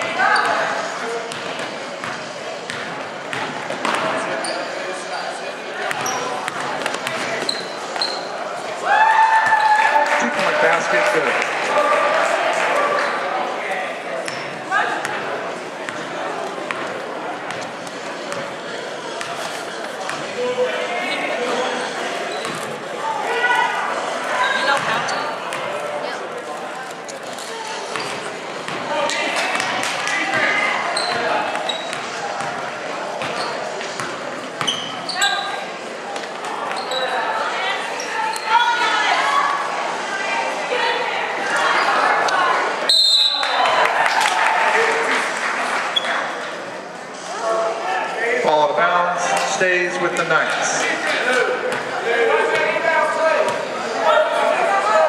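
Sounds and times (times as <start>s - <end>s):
basketball bouncing on wooden court: 1.3s - 4.1s, 5.9s - 8.2s, 24.8s - 25.7s, 30.3s - 32.6s
people calling out in echoing hall: 50.7s - 55.0s.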